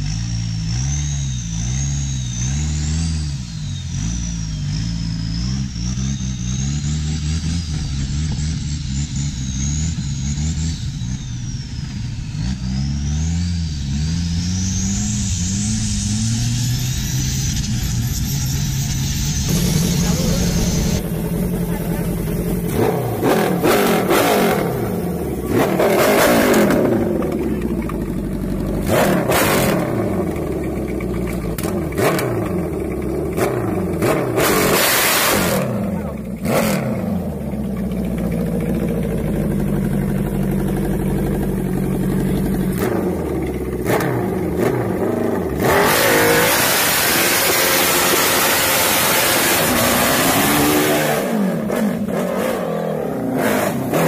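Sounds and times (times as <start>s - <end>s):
loud bursts of noise: 0.0s - 37.4s, 42.7s - 54.0s
engines revving: 0.0s - 54.0s.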